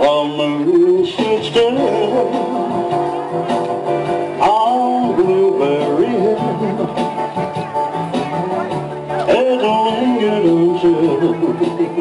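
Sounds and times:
man singing into microphone: 0:00.0 - 0:03.0, 0:04.4 - 0:07.3, 0:09.2 - 0:12.0
guitar accompaniment: 0:00.0 - 0:12.0.

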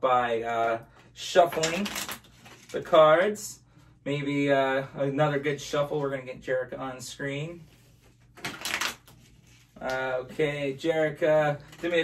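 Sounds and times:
playing cards riffle shuffled: 0:01.5 - 0:02.8, 0:07.7 - 0:10.4.

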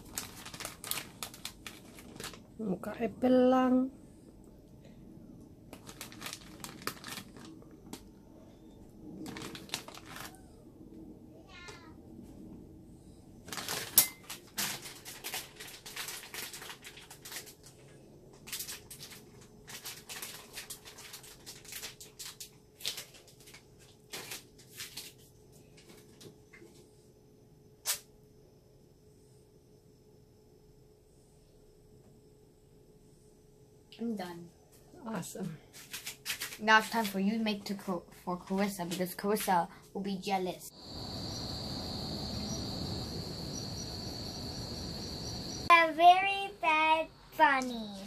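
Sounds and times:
plastic packet crinkling: 0:00.0 - 0:02.5, 0:05.7 - 0:08.1, 0:09.1 - 0:10.4, 0:13.5 - 0:17.8, 0:18.4 - 0:25.2.

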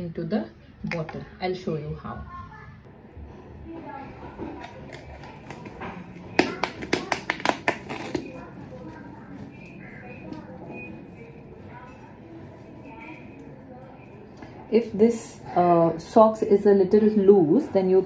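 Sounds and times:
plastic bottle crackling: 0:04.3 - 0:09.5.

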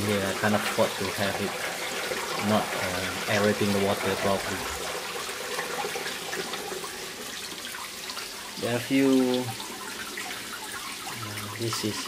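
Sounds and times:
water splashing into fish tank: 0:00.0 - 0:12.0.

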